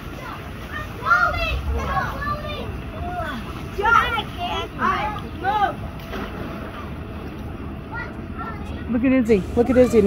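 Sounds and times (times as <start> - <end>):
distant children calling out: 0.0 - 6.0, 7.6 - 10.0.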